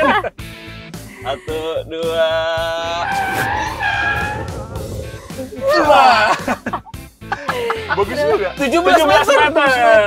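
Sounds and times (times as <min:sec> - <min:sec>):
background music: 0:00.0 - 0:10.0
people laughing and shrieking: 0:02.8 - 0:06.8.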